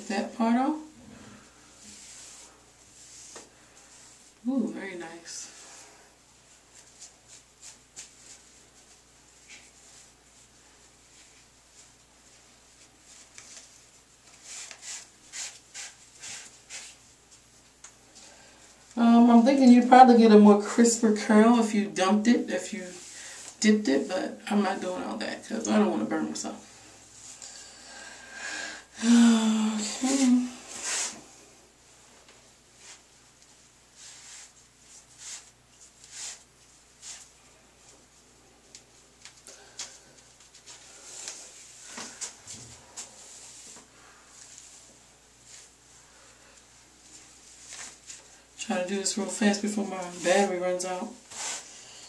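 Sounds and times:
yarn and hair rustling: 0:00.0 - 0:27.6, 0:29.0 - 0:52.0.

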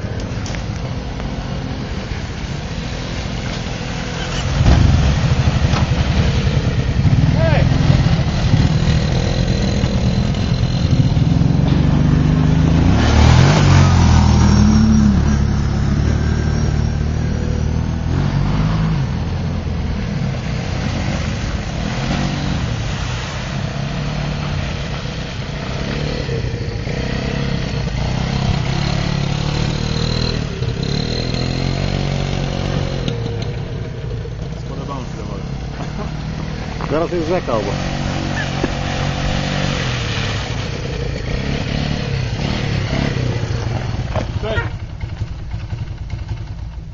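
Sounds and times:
atv engine revving: 0:00.0 - 0:46.9.

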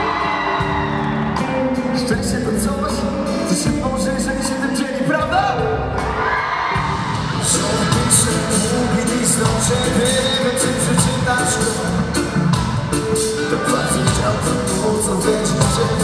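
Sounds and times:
crowd cheering: 0:00.0 - 0:02.4, 0:06.0 - 0:16.0
live reggae pop band: 0:00.0 - 0:16.0
man singing lead vocal: 0:01.8 - 0:06.0, 0:07.3 - 0:16.0.

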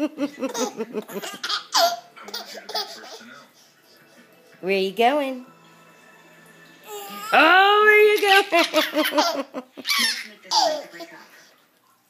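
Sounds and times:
baby laughing: 0:00.0 - 0:03.3, 0:08.2 - 0:11.1.

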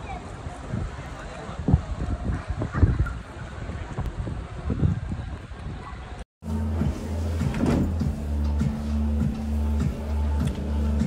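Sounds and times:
wind buffeting a microphone: 0:00.0 - 0:06.2.

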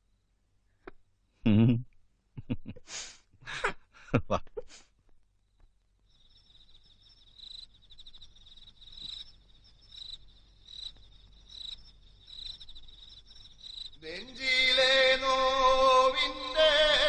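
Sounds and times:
crickets chirping: 0:05.4 - 0:17.0.

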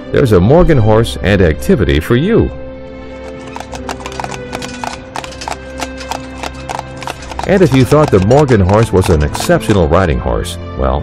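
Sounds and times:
horse hooves clip-clopping on pavement: 0:03.2 - 0:10.0.

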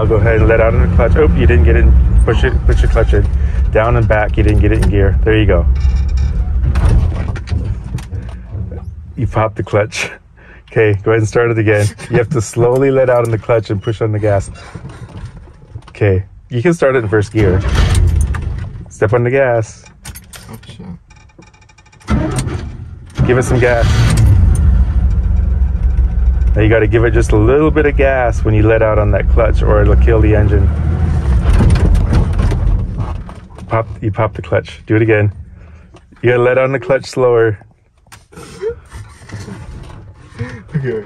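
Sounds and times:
pickup engine idling: 0:00.0 - 0:06.7, 0:24.3 - 0:30.0
truck engine lugging and stalling: 0:00.0 - 0:09.5, 0:17.2 - 0:36.5, 0:38.0 - 0:41.0.

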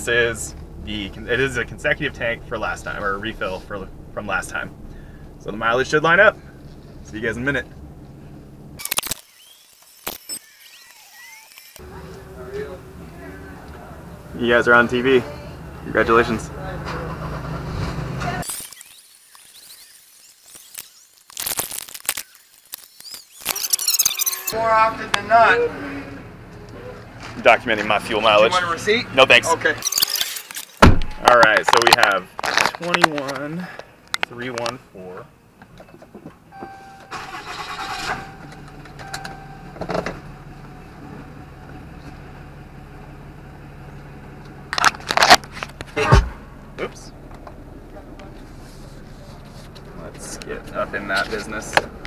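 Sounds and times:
diesel engine starting and idling: 0:00.0 - 0:08.8, 0:11.8 - 0:18.4, 0:36.6 - 0:52.0
low steady rumble: 0:00.0 - 0:08.8.

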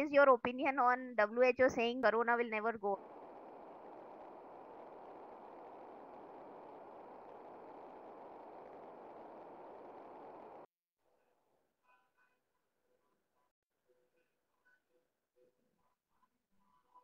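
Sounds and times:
open microphone hiss: 0:00.5 - 0:10.7.

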